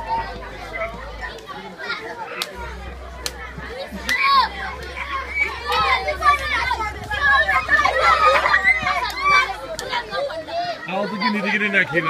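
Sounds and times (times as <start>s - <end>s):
children talking and shouting: 0.0s - 12.0s.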